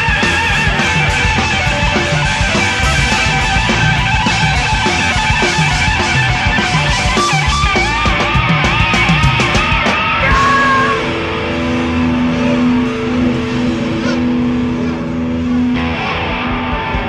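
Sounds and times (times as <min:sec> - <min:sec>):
bass guitar: 0:00.0 - 0:17.0
drums with cymbal hits: 0:00.0 - 0:17.0
electric guitar bending notes: 0:00.0 - 0:17.0.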